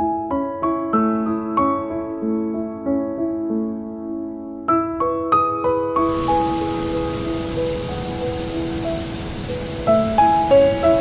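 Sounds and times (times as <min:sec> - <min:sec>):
slow piano music: 0:00.0 - 0:11.0
falling water rushing: 0:06.0 - 0:11.0.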